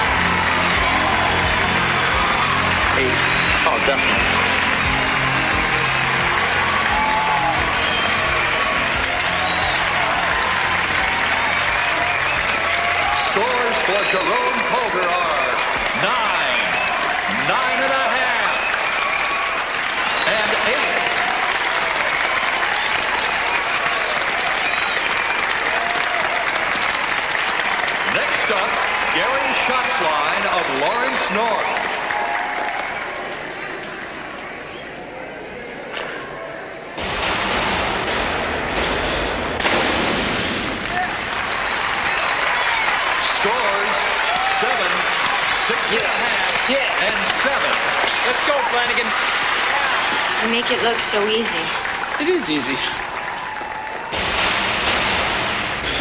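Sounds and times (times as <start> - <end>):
crowd applauding: 0.0 - 34.8, 36.0 - 56.0
crowd cheering and shouting: 0.0 - 56.0.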